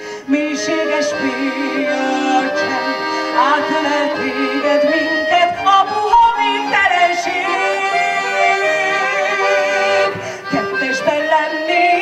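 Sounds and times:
instrumental accompaniment: 0.0s - 12.0s
woman singing with vibrato: 0.0s - 12.0s.

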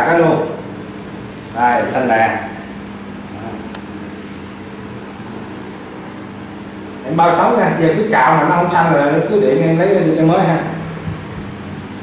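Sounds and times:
low droning hum: 0.0s - 12.0s.

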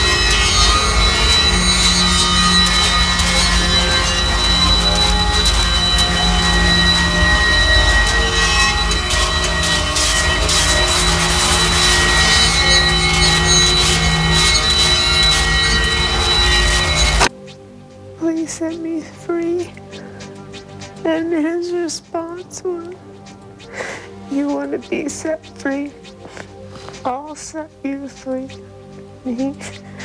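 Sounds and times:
high whistling tones: 0.0s - 30.0s.

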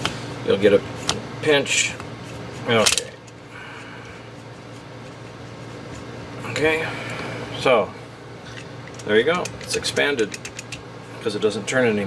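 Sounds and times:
room noise hum and hiss: 0.0s - 12.0s.

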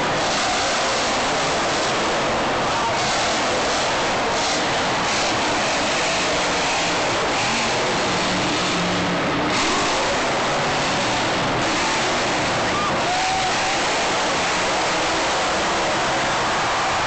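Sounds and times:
arena noise: 0.0s - 17.0s
truck engine revving: 0.0s - 17.0s.

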